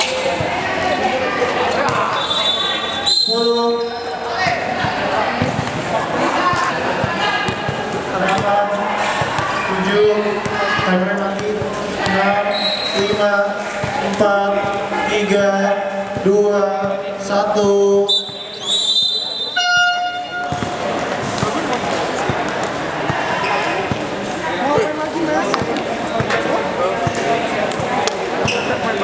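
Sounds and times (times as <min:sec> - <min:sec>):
people calling out: 0:00.0 - 0:14.2
basketball bouncing on court: 0:01.8 - 0:02.2, 0:04.4 - 0:14.8, 0:19.6 - 0:24.1.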